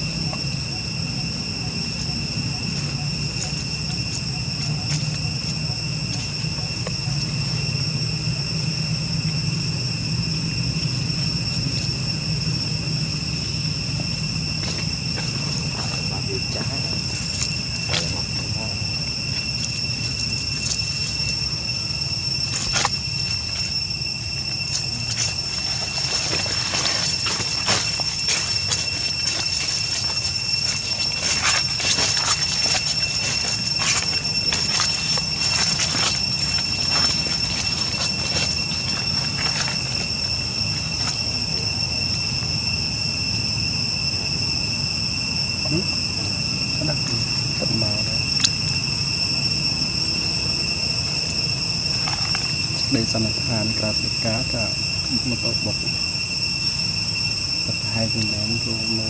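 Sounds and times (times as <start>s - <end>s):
dry leaves crackling underfoot: 0.0s - 9.3s, 10.6s - 43.4s, 46.8s - 59.0s
high-pitched insect drone: 0.0s - 59.0s.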